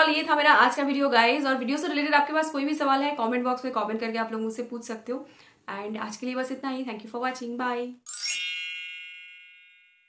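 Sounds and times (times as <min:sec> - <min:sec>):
bright chime ding: 0:08.1 - 0:10.0.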